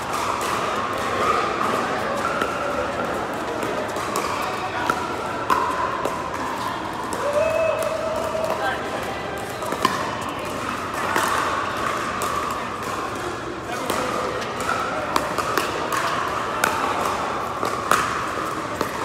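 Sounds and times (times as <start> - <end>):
murmur of players' voices: 0.0 - 19.0.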